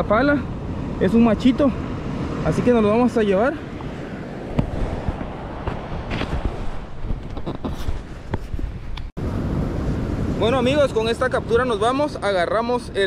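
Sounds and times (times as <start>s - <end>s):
beach surf: 0.0s - 13.0s
wind noise on microphone: 3.6s - 13.0s.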